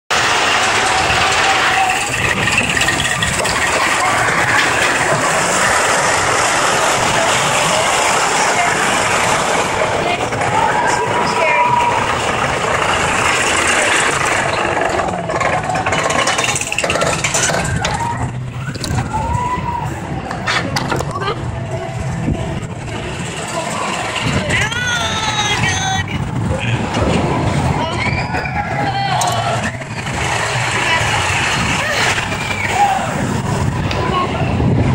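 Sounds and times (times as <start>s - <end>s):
roller coaster rumbling on steel track: 0.1s - 34.9s
faint voices: 0.5s - 34.9s
wind rushing over microphone: 17.2s - 34.9s.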